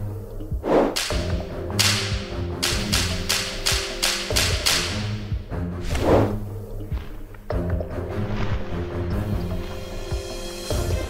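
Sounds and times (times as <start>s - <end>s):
music with sustained tones: 0.0s - 11.0s
sharp whip-like swishes: 0.6s - 5.2s, 5.8s - 6.4s.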